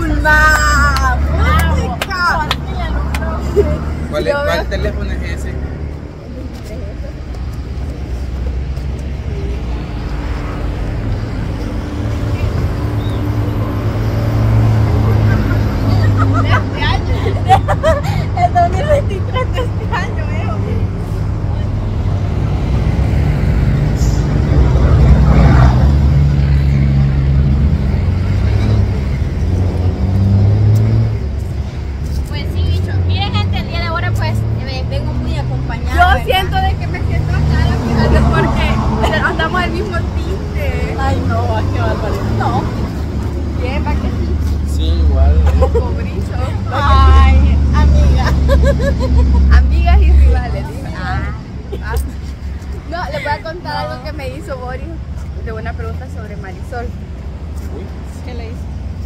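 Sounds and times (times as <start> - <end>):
voices: 0.0 - 22.9, 31.4 - 58.8
heavy vehicle engines rumbling: 0.0 - 59.0
highway traffic passing: 0.0 - 59.0.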